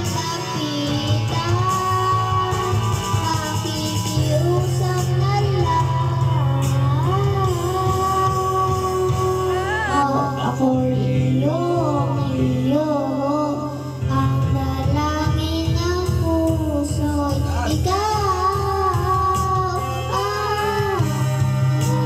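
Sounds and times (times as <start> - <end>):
child singing into microphone: 0.0 - 22.0
pop backing track: 0.0 - 22.0.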